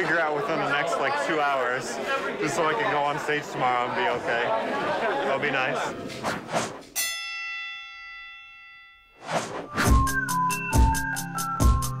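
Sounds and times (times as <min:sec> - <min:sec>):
whooshes: 0:06.1 - 0:06.9, 0:09.2 - 0:10.1
bell-like chime ringing: 0:07.0 - 0:11.8.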